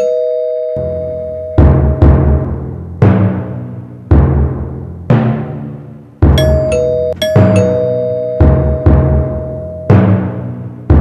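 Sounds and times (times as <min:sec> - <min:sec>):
two-tone doorbell chime: 0:00.0 - 0:01.8, 0:06.4 - 0:10.2
deep drum booms: 0:01.6 - 0:05.6.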